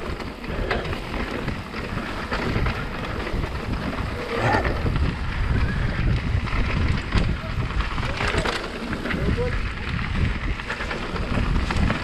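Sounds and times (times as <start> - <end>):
bike rattling over rocks: 0.0 - 12.0
bike tyres rolling over dirt: 0.0 - 12.0
wind buffeting microphone: 0.0 - 12.0.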